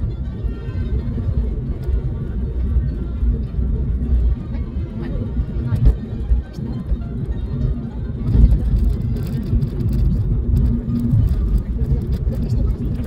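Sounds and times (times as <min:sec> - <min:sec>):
car interior engine and tyre rumble: 0:00.0 - 0:13.0.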